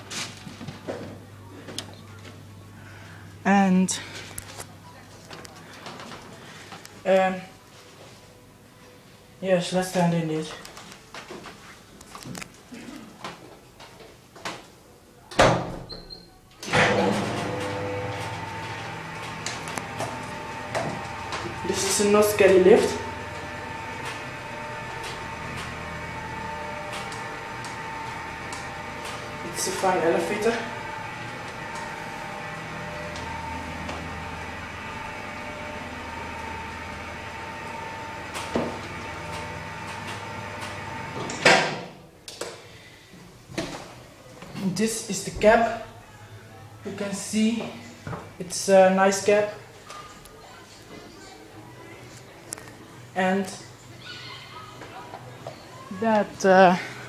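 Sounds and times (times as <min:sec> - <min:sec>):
lift drive humming: 0:16.6 - 0:41.5
lift door banging shut: 0:16.7 - 0:22.0.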